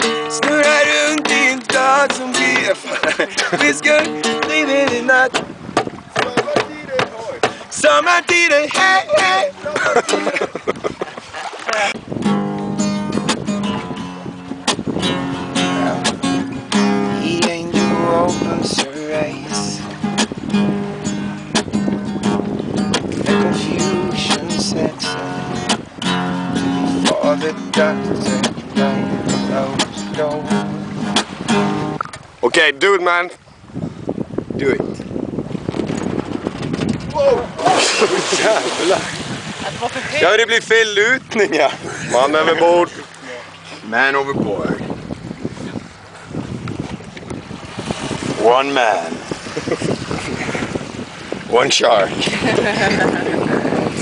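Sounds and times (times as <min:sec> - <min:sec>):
man singing: 0:00.0 - 0:05.6, 0:06.2 - 0:10.6, 0:17.1 - 0:20.0, 0:23.2 - 0:25.7, 0:27.0 - 0:30.6
acoustic guitar strumming: 0:00.0 - 0:10.5, 0:11.9 - 0:32.2
water rushing and splashing: 0:00.0 - 0:54.0
wind buffeting microphone: 0:00.0 - 0:54.0.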